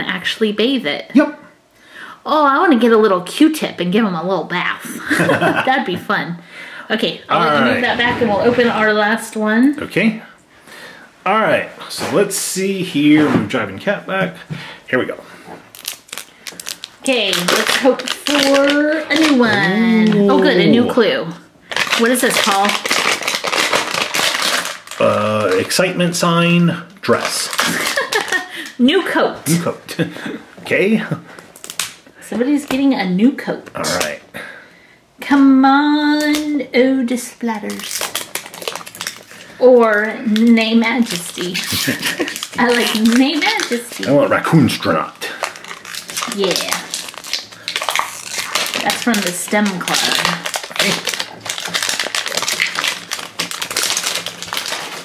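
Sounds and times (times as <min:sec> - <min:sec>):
plastic packaging crinkling: 0:15.0 - 0:26.4, 0:27.0 - 0:28.8, 0:31.3 - 0:32.1, 0:33.8 - 0:34.2, 0:37.4 - 0:55.0.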